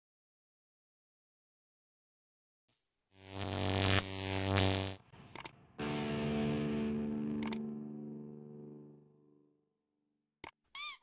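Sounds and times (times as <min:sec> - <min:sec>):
distorted electric guitar chord: 0:03.4 - 0:09.6
faint short click: 0:07.4 - 0:07.6.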